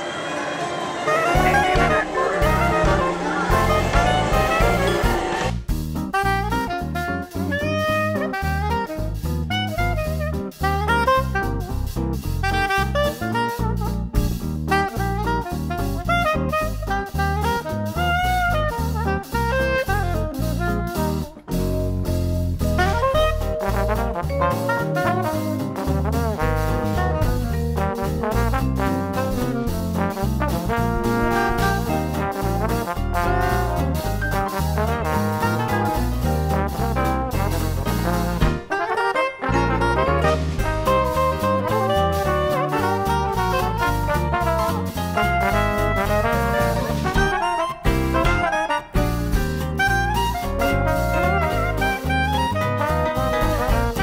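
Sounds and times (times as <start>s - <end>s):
jazz music with saxophone and horns: 1.1s - 54.0s
street jazz band playing: 1.1s - 54.0s.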